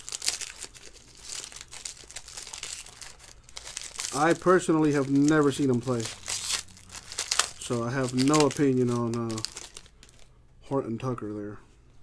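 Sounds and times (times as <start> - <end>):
foil wrapper crinkling and tearing: 0.0 - 10.3.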